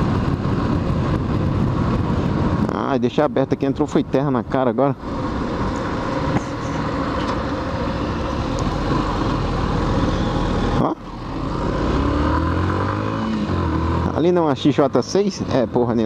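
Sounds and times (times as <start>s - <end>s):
wind rushing over microphone: 0.0s - 15.8s
motorcycle engine accelerating: 5.8s - 15.2s.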